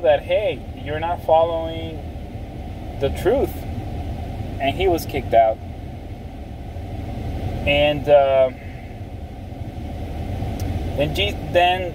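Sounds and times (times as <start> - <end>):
car rumble from inside cabin: 0.0 - 11.9.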